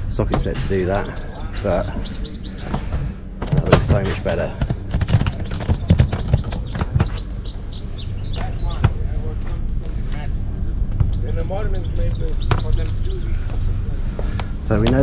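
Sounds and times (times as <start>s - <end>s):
low background rumble: 0.0s - 15.0s
scattered knocks: 0.2s - 9.1s, 12.1s - 12.9s
small bird chirping: 0.9s - 3.2s, 5.4s - 9.2s, 11.0s - 13.8s.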